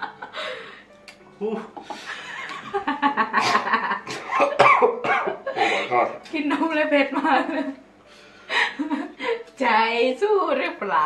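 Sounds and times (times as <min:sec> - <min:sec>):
man coughing harshly: 0:03.4 - 0:06.0.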